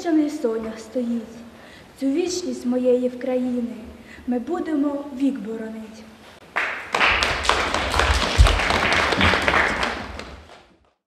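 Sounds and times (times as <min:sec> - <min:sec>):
audience clapping: 0:06.4 - 0:11.0.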